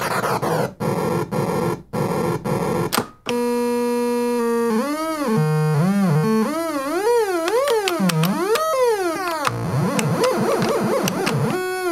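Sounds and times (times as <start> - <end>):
harsh electronic buzz: 0.8 - 11.9.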